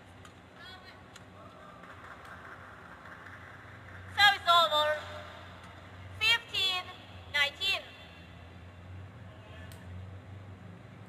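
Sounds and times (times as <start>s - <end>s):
constant low hum: 0.0s - 11.0s
sports hall background noise: 0.0s - 11.0s.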